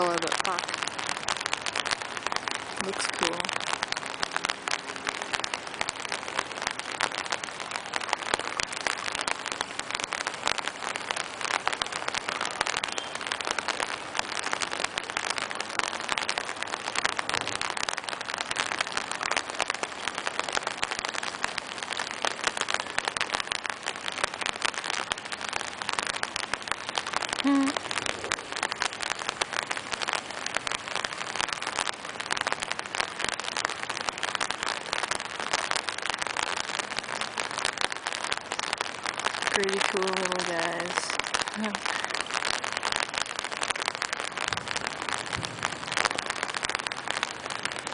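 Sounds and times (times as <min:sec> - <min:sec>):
rain pattering on umbrella: 0:00.0 - 0:47.9.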